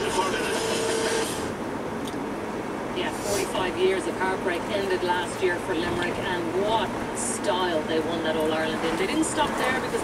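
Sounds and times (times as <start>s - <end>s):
road noise: 0.0s - 10.0s
van engine running: 0.0s - 10.0s.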